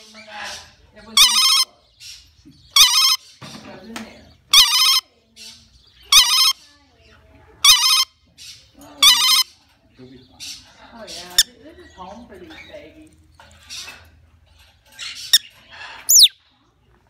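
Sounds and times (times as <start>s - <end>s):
parrot mimicking telephone ring: 2.8s - 3.2s, 4.6s - 5.0s, 6.1s - 6.6s, 7.6s - 8.2s, 9.0s - 9.5s.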